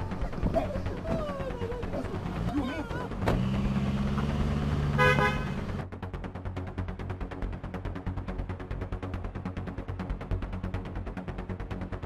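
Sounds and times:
voice crying out: 0.0s - 3.2s
short car horn toot: 5.0s - 5.5s.

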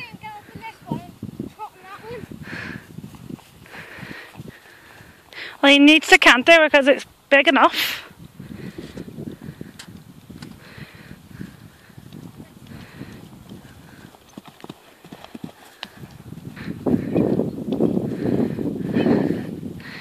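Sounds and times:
hooves cantering on grass: 0.0s - 7.3s, 8.2s - 20.0s.

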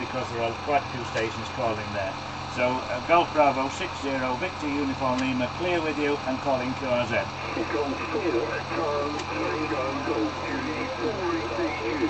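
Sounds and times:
overlapping voices over radio loudspeaker: 2.6s - 12.0s.

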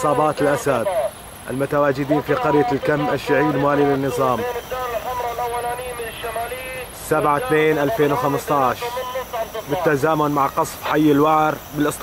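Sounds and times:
high-pitched steady whine: 0.0s - 12.0s
person talking: 0.0s - 12.0s.

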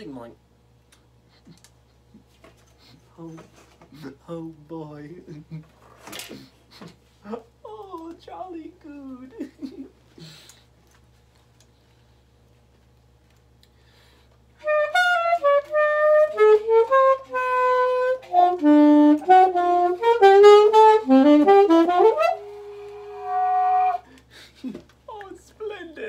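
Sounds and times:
alto saxophone fast jazz run: 14.6s - 24.0s.

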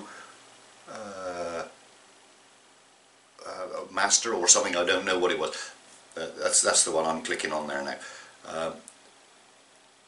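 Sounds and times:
man humming hesitantly: 0.9s - 1.7s.

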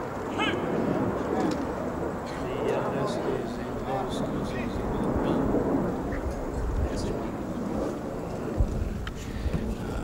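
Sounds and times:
murmur of outdoor crowd: 0.0s - 10.0s.

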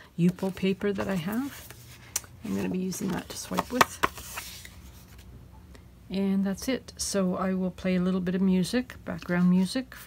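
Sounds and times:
paper rustling: 0.2s - 5.3s.

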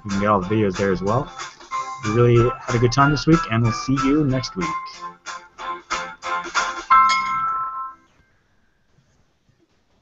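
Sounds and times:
bell-like chime: 6.9s - 8.2s.

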